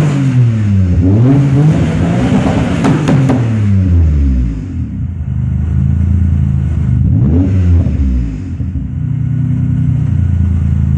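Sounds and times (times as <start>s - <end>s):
car engine idling and revving: 0.0s - 10.9s.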